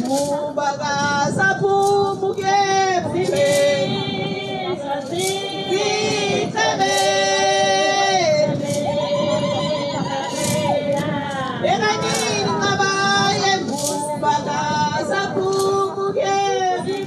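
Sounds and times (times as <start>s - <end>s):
young women singing in unison: 0.0s - 17.0s.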